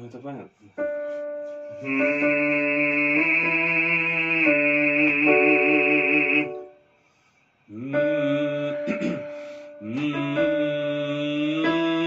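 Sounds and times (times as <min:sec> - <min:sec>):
electronic keyboard chords: 0:00.8 - 0:06.8, 0:07.8 - 0:12.0.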